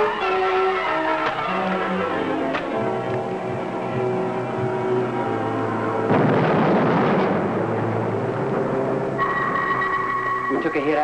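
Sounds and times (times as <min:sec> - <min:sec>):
dramatic background music: 0:00.0 - 0:11.0
high electronic tone: 0:09.2 - 0:11.0.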